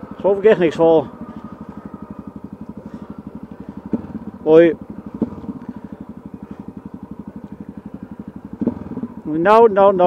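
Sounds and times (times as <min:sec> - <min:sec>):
motorcycle engine at low revs: 0:00.0 - 0:10.0.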